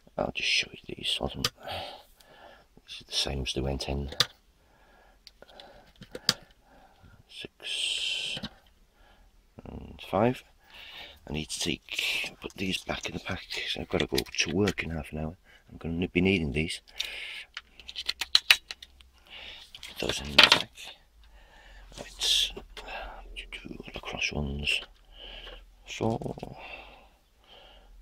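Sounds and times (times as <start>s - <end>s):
batteries clicking into plastic holder: 17.0s - 19.0s.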